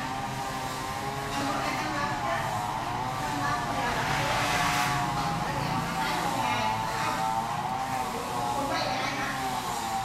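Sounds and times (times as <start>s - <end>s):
motor engine running: 0.0s - 10.0s.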